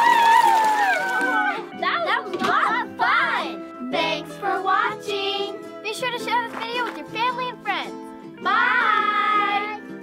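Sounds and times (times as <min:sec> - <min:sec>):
cheerful background music: 0:00.0 - 0:10.0.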